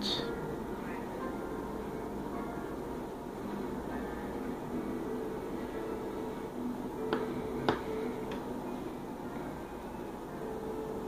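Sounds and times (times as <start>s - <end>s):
faint steady tones: 0.0s - 11.0s
room background: 0.0s - 11.0s.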